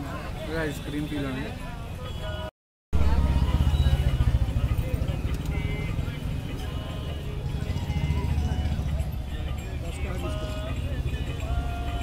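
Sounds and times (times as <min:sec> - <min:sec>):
voices: 0:00.0 - 0:12.0
faint music: 0:03.0 - 0:12.0.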